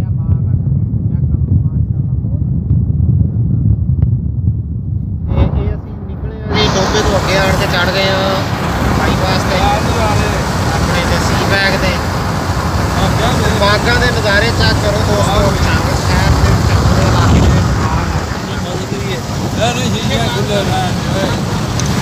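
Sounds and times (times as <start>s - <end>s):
car road noise rumble: 0.0s - 22.0s
voices: 5.3s - 22.0s.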